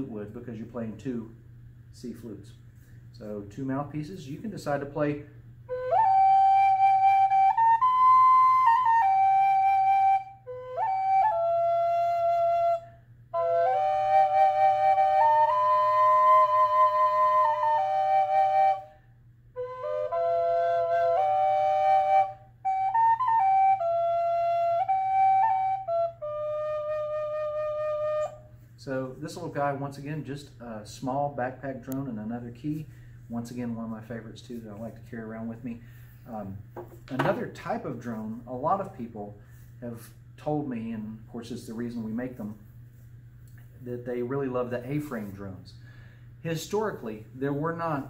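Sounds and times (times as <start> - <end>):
wooden drone flute melody: 5.7 - 28.6.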